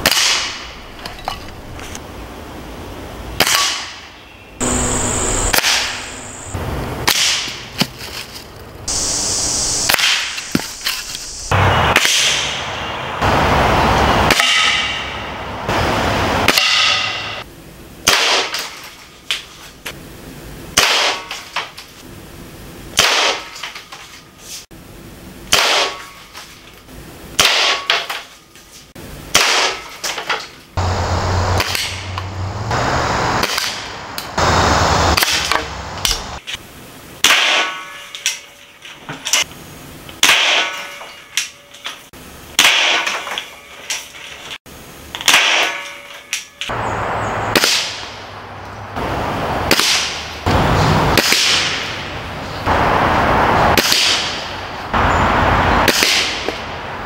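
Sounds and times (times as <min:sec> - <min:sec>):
air rifle shots: 0:05.4 - 0:07.6, 0:23.0 - 0:23.4, 0:49.7 - 0:50.3, 0:51.1 - 0:52.0, 0:53.7 - 0:54.5, 0:55.8 - 0:56.6.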